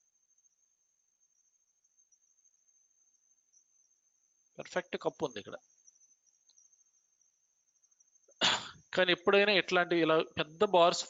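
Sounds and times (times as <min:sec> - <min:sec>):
man sneezing: 0:08.4 - 0:08.8.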